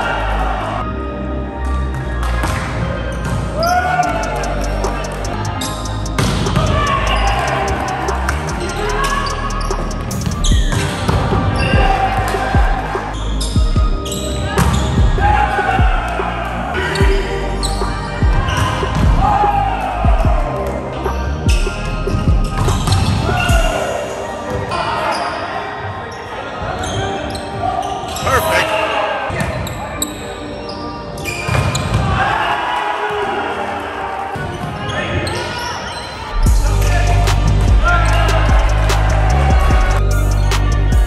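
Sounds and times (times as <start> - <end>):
players calling out: 3.4 - 20.4, 28.1 - 28.9.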